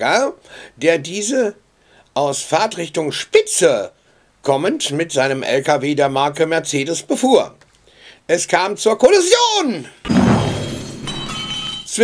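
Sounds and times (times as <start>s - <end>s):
heavy impact with shattering glass: 10.1s - 11.9s
glass pieces ringing: 10.5s - 12.0s.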